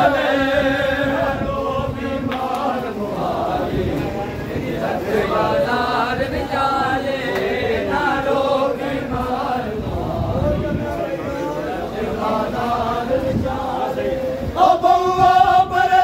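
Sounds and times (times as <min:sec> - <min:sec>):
men chanting a mourning lament: 0:00.0 - 0:16.0.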